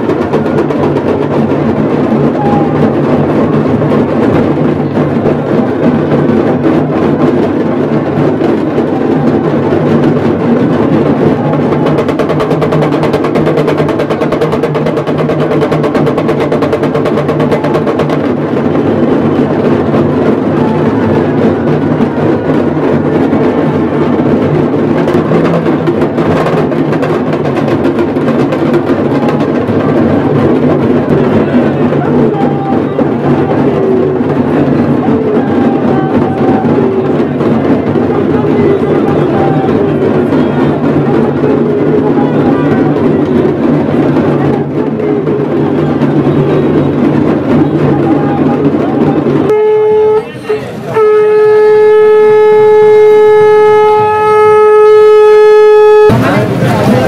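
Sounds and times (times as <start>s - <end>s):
rapid rolling drumming: 0.0s - 57.0s.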